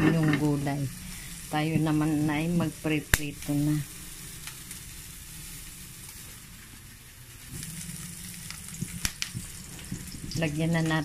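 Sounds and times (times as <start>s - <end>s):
vegetables sizzling in a pan: 0.0s - 11.0s.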